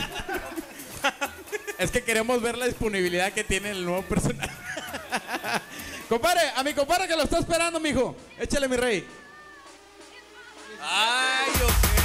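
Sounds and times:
long drawn-out shout: 9.0 - 11.6.

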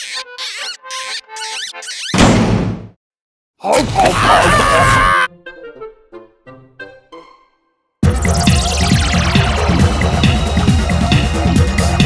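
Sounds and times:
cartoon squeaks: 0.0 - 2.2.

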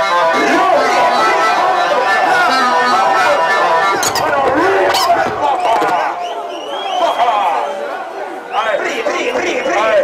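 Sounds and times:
crowd shouting and talking: 0.0 - 10.0.

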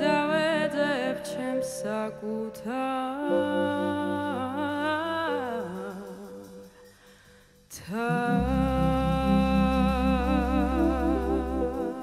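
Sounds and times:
woman singing long notes: 0.0 - 6.6, 7.8 - 12.0
soft low accompaniment: 0.0 - 12.0.

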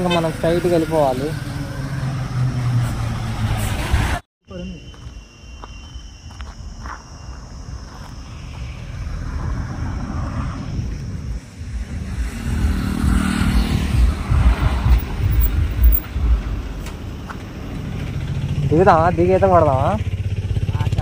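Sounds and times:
vehicle driving past: 0.0 - 4.2, 8.2 - 21.0.

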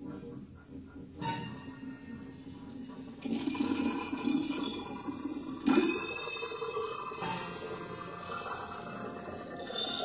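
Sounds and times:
experimental piano and electronics: 0.0 - 10.0.

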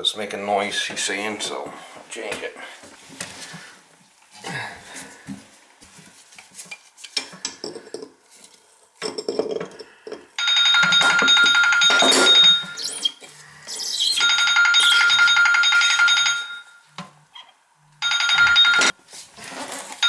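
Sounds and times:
mobile phone ringtone: 10.4 - 12.8, 14.2 - 16.9, 18.0 - 19.0.

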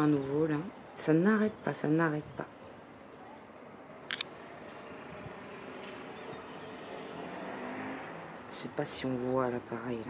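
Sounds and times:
vehicle rumbling: 3.7 - 10.0.

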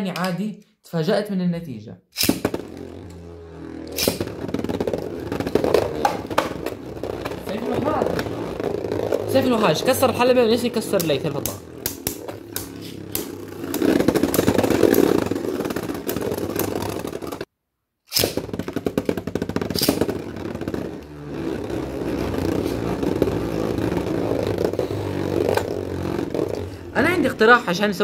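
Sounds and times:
spinning tops whirring and grinding: 2.2 - 17.5, 18.1 - 28.0.

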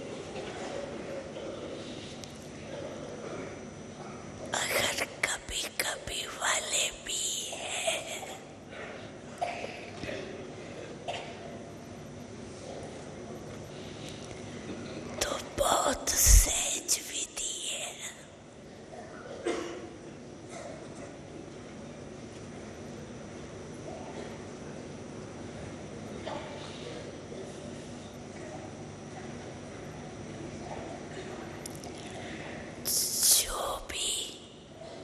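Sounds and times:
woman speaking softly: 4.5 - 8.5, 15.2 - 18.4, 32.9 - 34.6.

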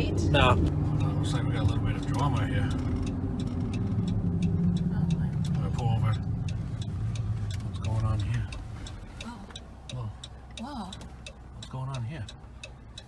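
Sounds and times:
engine and road drone in car cabin: 0.0 - 13.0.

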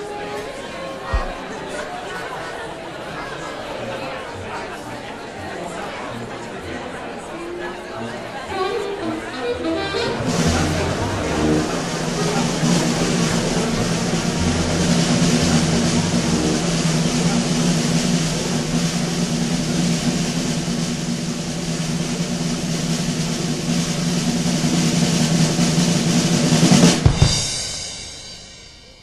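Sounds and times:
sharp drum hits: 1.1 - 1.6, 26.9 - 29.0
snare drum roll: 1.1 - 1.9, 9.4 - 28.9
held low note: 8.4 - 22.6.

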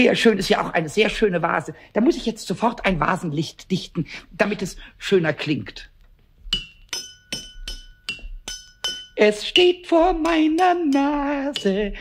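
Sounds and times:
vase tapped with ringing tone: 6.5 - 9.2.

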